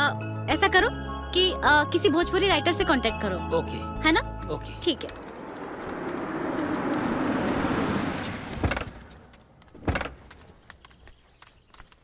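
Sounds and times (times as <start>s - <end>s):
vehicle driving up and stopping: 4.5s - 10.6s
car door clunks: 8.2s - 9.2s, 9.8s - 10.3s.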